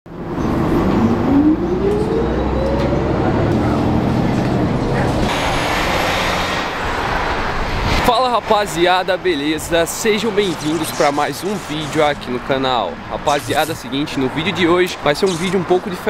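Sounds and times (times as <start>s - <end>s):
bus engine rumble with whine: 0.1s - 8.0s.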